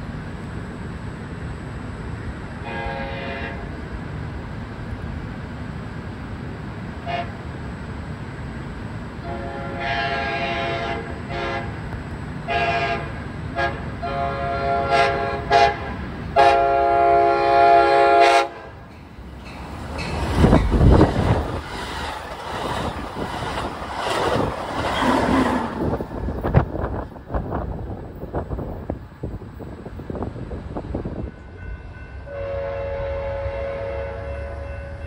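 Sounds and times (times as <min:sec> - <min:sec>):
train rushing past: 0:00.0 - 0:35.0
train air horn blasts: 0:02.6 - 0:03.8, 0:07.0 - 0:07.4, 0:09.2 - 0:11.8, 0:12.4 - 0:18.8, 0:31.5 - 0:35.0.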